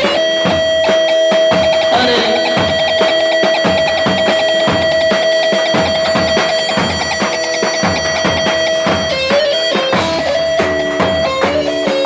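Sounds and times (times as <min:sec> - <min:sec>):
drum beat: 0:00.0 - 0:12.0
electric lute holding high note: 0:01.5 - 0:12.0.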